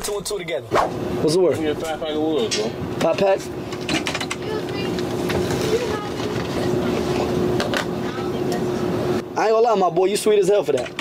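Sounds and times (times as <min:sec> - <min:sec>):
steady hum: 0:00.0 - 0:10.7.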